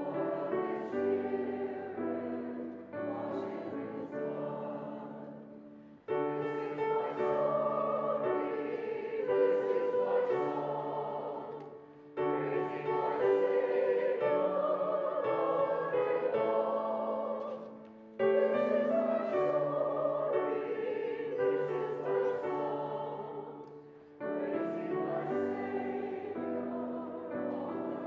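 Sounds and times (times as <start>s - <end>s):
choir singing a hymn: 0.0s - 28.0s.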